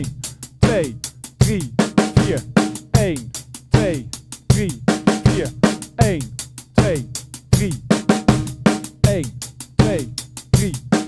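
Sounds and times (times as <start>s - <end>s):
bass drum strokes: 0.0s - 8.5s
hi-hat sixteenth notes: 0.0s - 11.0s.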